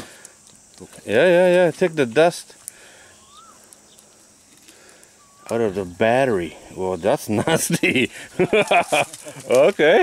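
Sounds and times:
outdoor background noise: 0.0 - 10.0
faint rising and falling call: 3.0 - 4.0, 5.0 - 6.8.

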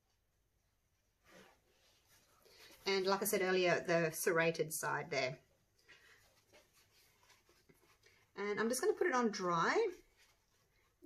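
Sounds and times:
paper towel rustling: 0.1 - 4.2, 5.2 - 11.0.

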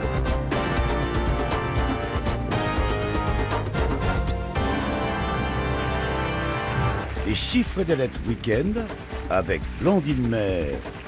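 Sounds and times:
game show theme music: 0.0 - 11.0.

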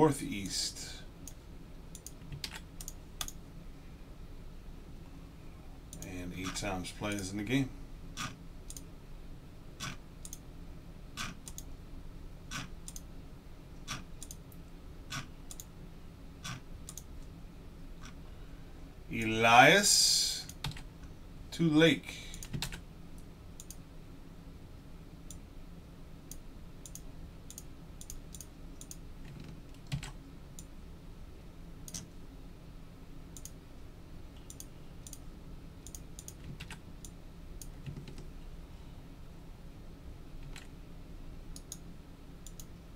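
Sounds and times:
faint low hum: 0.0 - 42.9
computer mouse clicks: 1.2 - 3.4, 8.2 - 8.8, 9.8 - 10.4, 11.2 - 11.7, 12.5 - 13.1, 13.9 - 15.7, 16.4 - 17.1, 23.6 - 23.8, 26.3 - 30.7, 31.9 - 32.1, 33.4 - 33.6, 34.4 - 35.2, 35.8 - 38.3, 41.5 - 41.8, 42.4 - 42.7.

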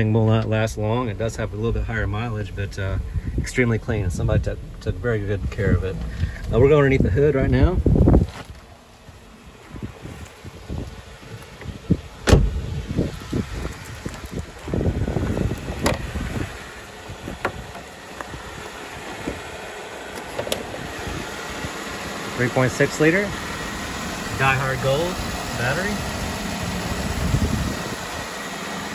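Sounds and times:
scuffing and shuffling: 8.0 - 19.5
car hood clunks and clicks: 11.5 - 12.9, 15.2 - 16.2, 17.3 - 18.4, 20.1 - 20.9.

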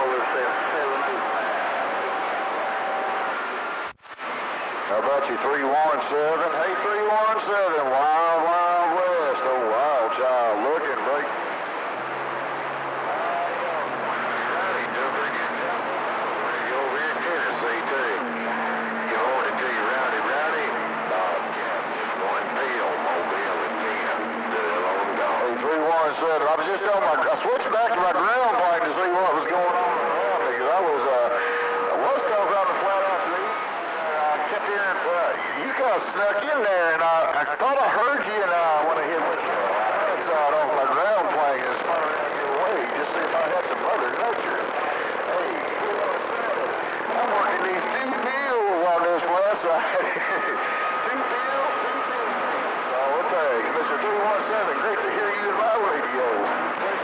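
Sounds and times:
radio static: 0.0 - 57.0
garbled radio voices: 3.2 - 57.0.

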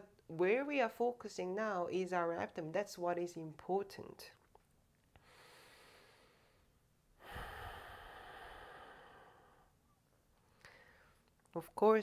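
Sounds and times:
person breathing into microphone: 5.2 - 9.7.

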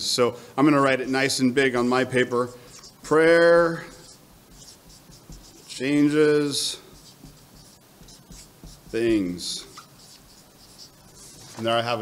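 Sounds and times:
pen scratching on paper: 2.7 - 11.6.

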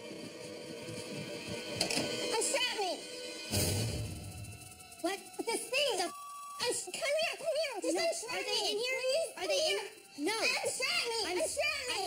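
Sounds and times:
high-pitched swooping voices: 4.7 - 12.0.

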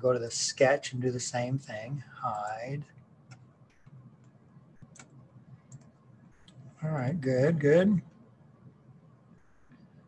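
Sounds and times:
computer mouse clicks: 3.3 - 6.6.

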